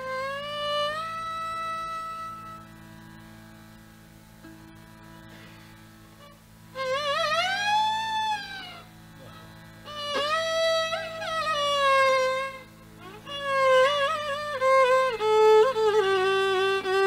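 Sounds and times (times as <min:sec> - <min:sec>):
violin melody: 0:00.0 - 0:03.3, 0:04.4 - 0:09.0, 0:09.8 - 0:17.0.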